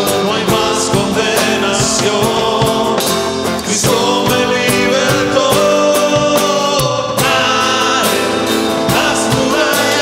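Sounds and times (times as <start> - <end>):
drum hits: 0.0 - 10.0
people singing: 0.0 - 10.0
strummed acoustic guitar: 0.0 - 10.0.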